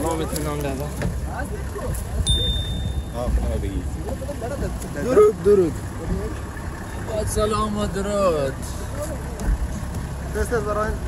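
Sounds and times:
men talking: 0.0 - 11.0
minibus engine idling: 0.0 - 11.0.

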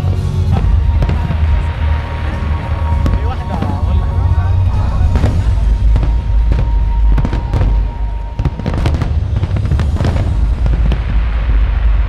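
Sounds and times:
deep rumble: 0.0 - 12.0
fireworks bangs and crackles: 0.0 - 12.0.

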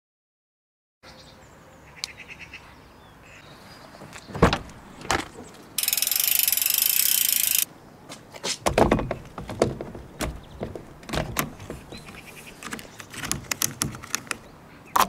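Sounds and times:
loud rapid mechanical rattle: 5.8 - 7.7
small clicks: 5.8 - 7.7.

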